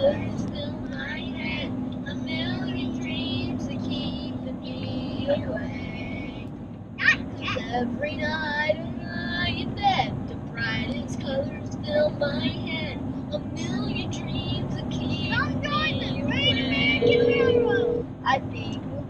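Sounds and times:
road and engine noise: 0.0 - 19.0.

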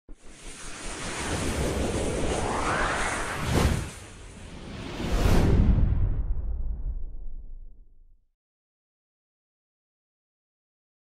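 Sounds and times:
whoosh sound effect: 0.3 - 6.5.

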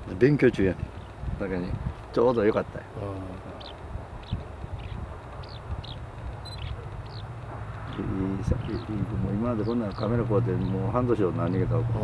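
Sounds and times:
low outdoor rumble: 0.0 - 12.0
small bird calling: 0.8 - 11.7.

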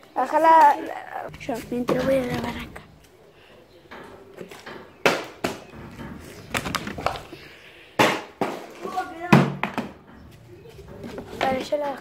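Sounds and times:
children's voices: 0.2 - 3.0, 10.7 - 12.0.

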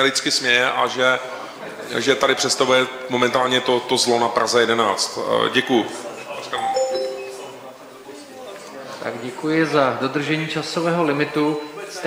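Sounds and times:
two-note electronic chime: 6.6 - 7.9.

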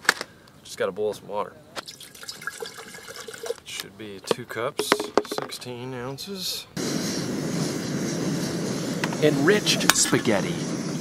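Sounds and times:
camping stove flame hissing: 6.4 - 11.0.

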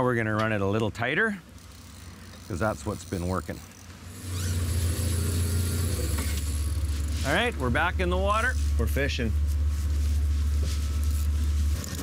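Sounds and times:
outboard motor running: 1.4 - 12.0.

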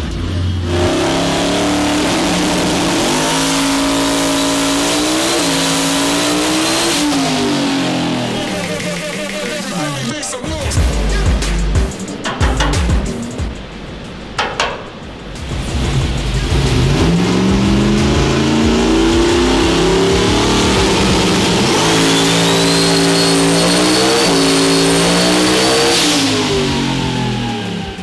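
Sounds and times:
engine revving at full throttle: 0.0 - 9.2, 15.4 - 28.0
high turbo whine: 0.0 - 28.0.

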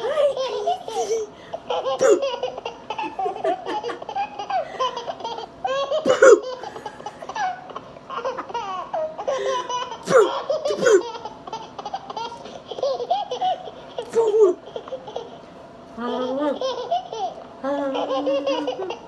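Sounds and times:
high-pitched laughter: 16.3 - 19.0.

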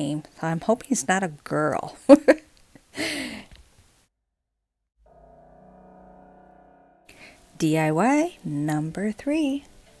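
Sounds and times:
soft music with held chord: 5.1 - 10.0.

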